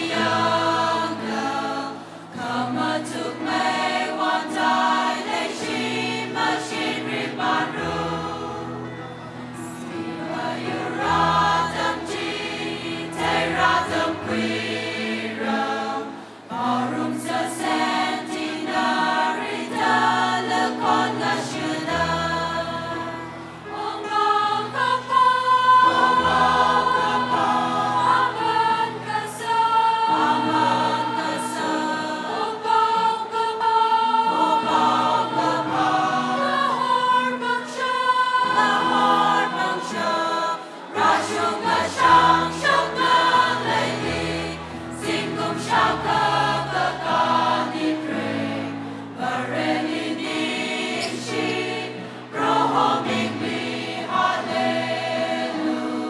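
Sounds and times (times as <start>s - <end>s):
choir singing: 0.0s - 56.0s
musical accompaniment: 0.0s - 56.0s.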